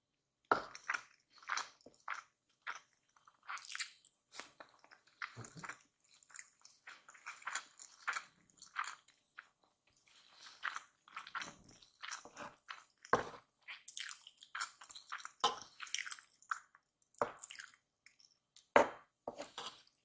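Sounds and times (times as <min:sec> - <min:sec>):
wet chewing sounds: 0:00.6 - 0:18.7
wooden spoon scraping wooden plate: 0:19.3 - 0:19.8.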